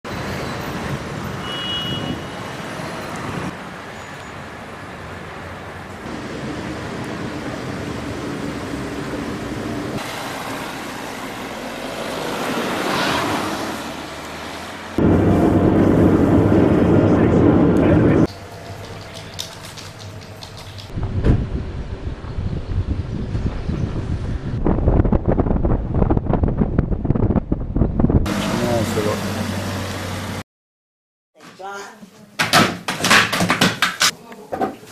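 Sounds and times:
car engine and road noise: 0:00.0 - 0:30.4
car passing: 0:04.5 - 0:24.7, 0:28.3 - 0:30.4
rough gusty noise: 0:20.9 - 0:28.3.

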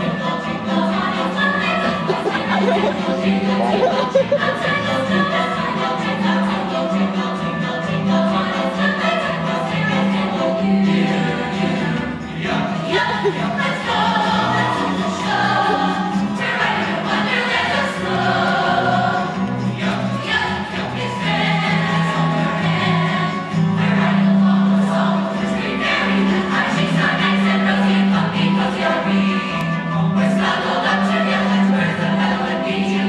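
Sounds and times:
mixed choir singing in harmony: 0:00.0 - 0:33.0.

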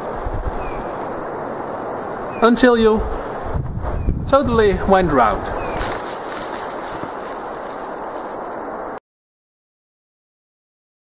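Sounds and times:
outdoor rustling noise: 0:00.0 - 0:09.0.

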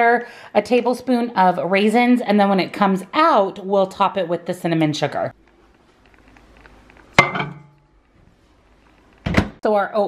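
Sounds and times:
bowl clinking on glass: 0:07.2 - 0:07.8.

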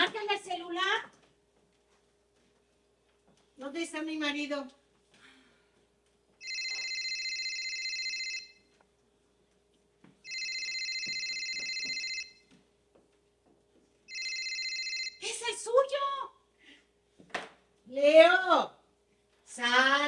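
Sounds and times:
telephone ringing: 0:06.4 - 0:08.7, 0:10.2 - 0:12.5, 0:14.1 - 0:15.2.

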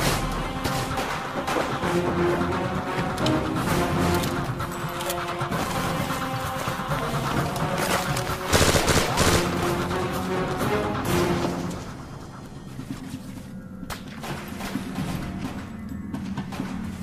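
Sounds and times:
background music: 0:00.0 - 0:17.0
gunshots: 0:07.8 - 0:09.9.

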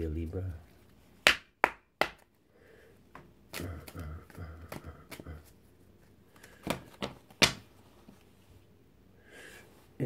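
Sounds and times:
cards slapping: 0:01.2 - 0:02.4, 0:03.1 - 0:05.5, 0:06.3 - 0:07.8.

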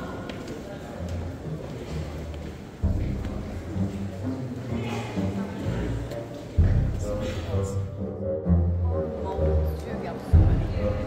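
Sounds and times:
echoing chatter of visitors: 0:00.0 - 0:11.0.

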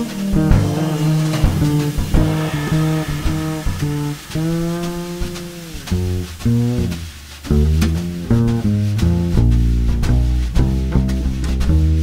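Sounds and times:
light percussion strokes: 0:00.0 - 0:11.4
jazz double bass plucked: 0:00.0 - 0:12.0.

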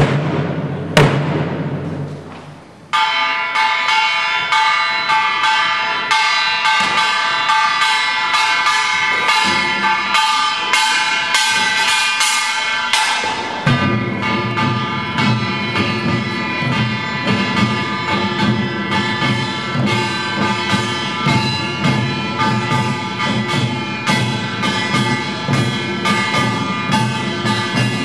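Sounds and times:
drums: 0:00.0 - 0:28.0
small brass gong strokes: 0:09.2 - 0:28.0.

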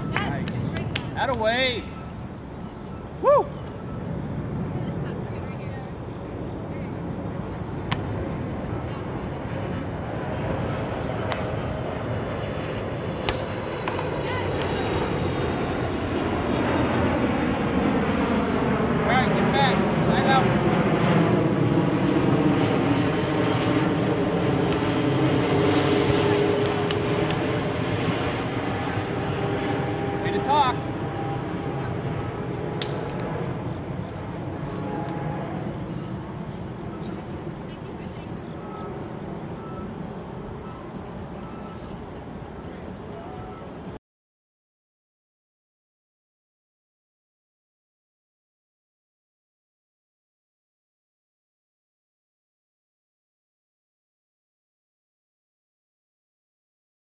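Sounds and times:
aircraft passing overhead: 0:00.0 - 0:44.0
volleyball being hit: 0:07.9 - 0:08.1, 0:13.3 - 0:14.0.

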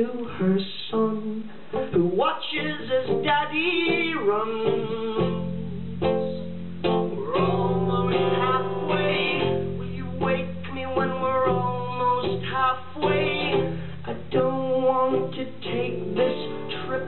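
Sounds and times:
man singing: 0:00.0 - 0:17.0
acoustic guitar strumming: 0:01.7 - 0:17.0.

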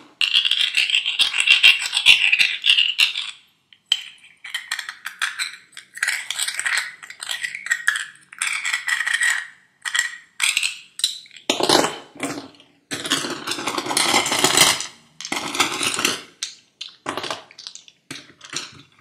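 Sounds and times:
seashells clattering: 0:15.2 - 0:18.8.

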